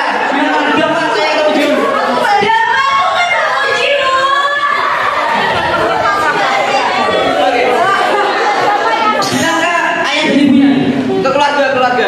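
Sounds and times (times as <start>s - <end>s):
excited talking into microphone: 0.0s - 12.0s
voices chattering: 0.0s - 12.0s.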